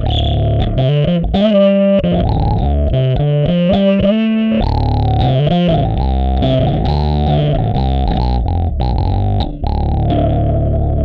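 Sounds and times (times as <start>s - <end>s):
distorted electric bass riff: 0.0s - 11.0s.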